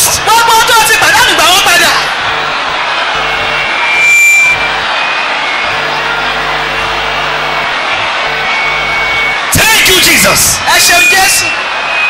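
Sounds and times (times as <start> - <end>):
music playing in hall: 0.0 - 6.3
crowd moving about: 0.0 - 10.8.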